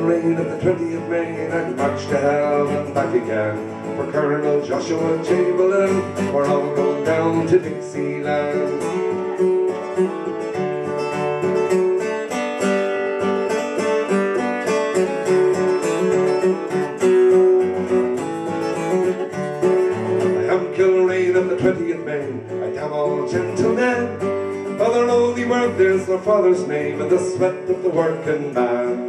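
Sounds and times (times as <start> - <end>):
acoustic guitar strumming chords: 0.0 - 29.0.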